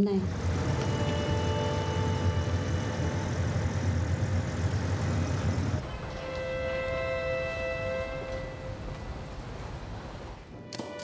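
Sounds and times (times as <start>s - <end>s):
traffic engine rumble: 0.0s - 10.6s
faint steady tones: 0.0s - 11.0s.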